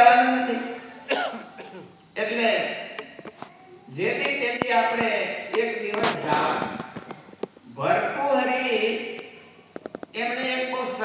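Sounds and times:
man's vocal sounds through microphone: 3.9 - 9.2.

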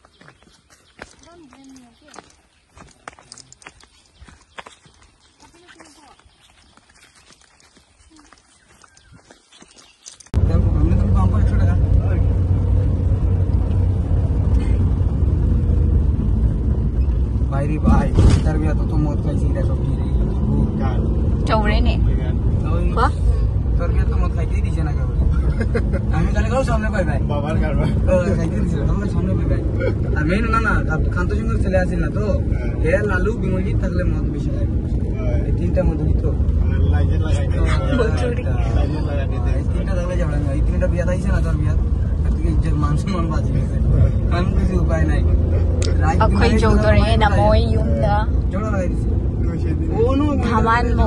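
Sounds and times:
faint outdoor sounds: 0.0 - 51.0
car cabin road and engine rumble: 10.3 - 51.0.

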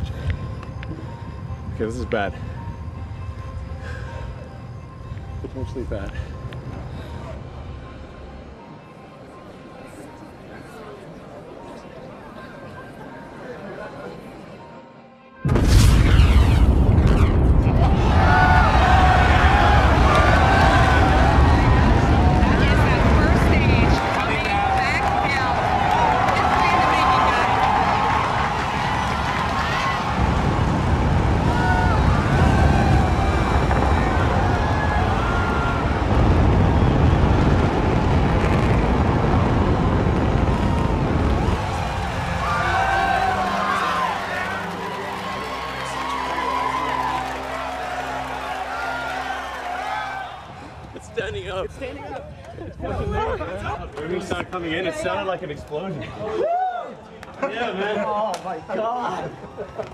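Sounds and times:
loud rocket boom: 15.4 - 24.1, 27.1 - 43.6
deep rumble: 15.5 - 44.3
crowd cheering and screaming: 16.0 - 51.0, 56.1 - 57.1.

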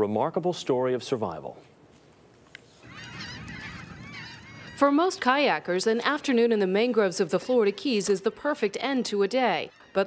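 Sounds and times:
waterbirds calling: 2.8 - 10.0.

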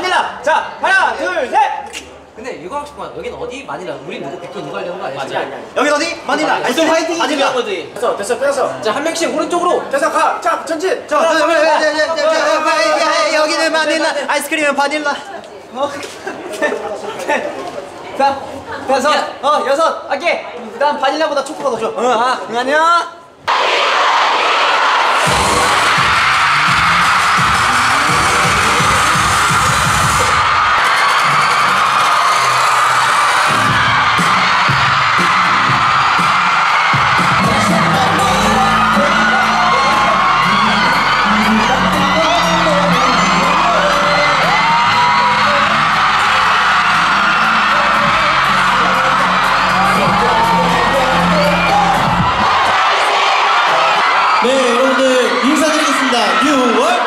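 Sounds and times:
audience screaming and cheering: 23.5 - 57.0
pop dance music with heavy bass: 25.2 - 52.7.

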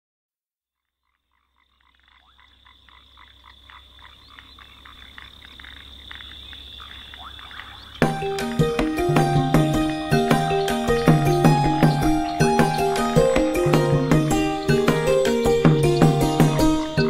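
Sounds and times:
steady high-pitched drone: 8.0 - 17.0.

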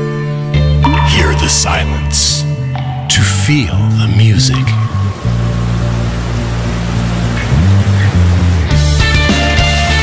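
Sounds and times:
music with low bass: 0.8 - 10.0.

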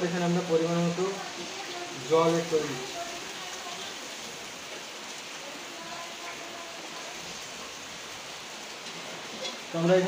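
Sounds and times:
curry bubbling and sizzling: 0.0 - 10.0.

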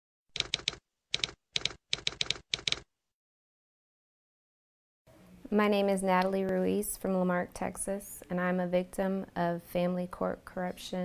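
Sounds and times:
typewriter key strikes: 0.4 - 2.8.

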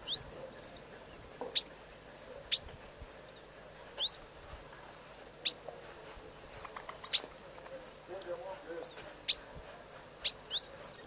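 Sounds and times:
high-pitched bird calls: 0.0 - 0.9, 7.0 - 7.3, 10.2 - 11.0.

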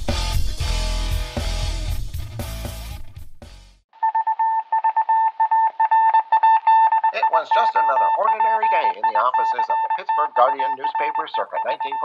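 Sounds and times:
music: 0.0 - 12.0
high beep keyed in pulses: 4.0 - 12.0.

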